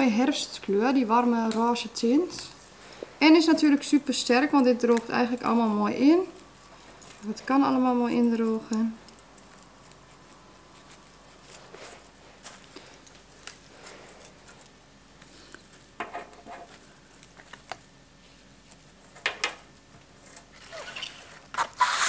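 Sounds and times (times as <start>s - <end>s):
flower stems rustling and clicking: 0.0s - 17.9s.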